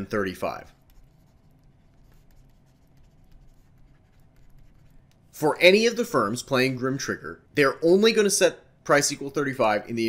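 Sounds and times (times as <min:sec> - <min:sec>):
stylus scratching on tablet screen: 0:00.0 - 0:05.3.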